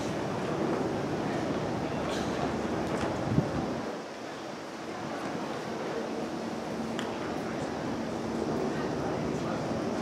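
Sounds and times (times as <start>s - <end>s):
wind on microphone: 3.1s - 4.0s.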